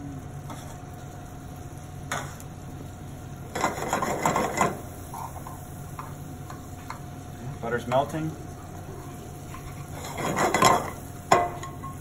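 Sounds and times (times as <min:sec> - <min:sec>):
kitchen equipment hum and hiss: 0:00.0 - 0:12.0.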